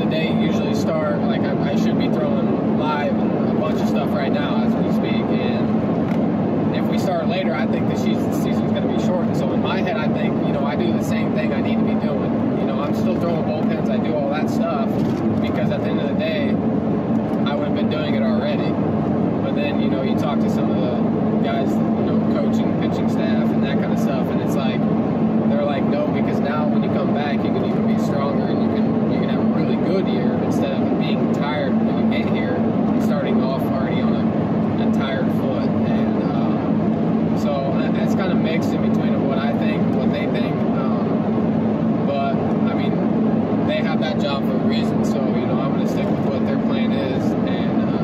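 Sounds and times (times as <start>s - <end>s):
man talking: 0.0s - 5.8s, 6.7s - 16.6s, 17.4s - 18.8s, 19.4s - 24.9s, 25.5s - 36.7s, 37.4s - 41.3s, 42.0s - 48.0s
car engine and tyres drone: 0.0s - 48.0s.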